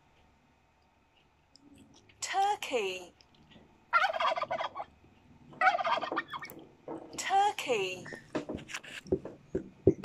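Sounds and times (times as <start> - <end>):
turkey gobbling: 3.9 - 6.6.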